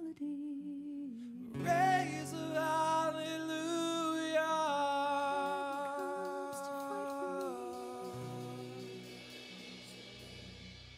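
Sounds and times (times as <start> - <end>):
soft band accompaniment: 1.6 - 10.9.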